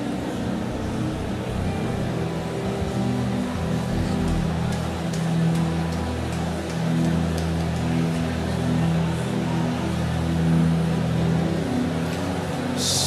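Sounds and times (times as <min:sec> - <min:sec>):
worship music chords: 0:00.0 - 0:07.4, 0:10.1 - 0:13.0.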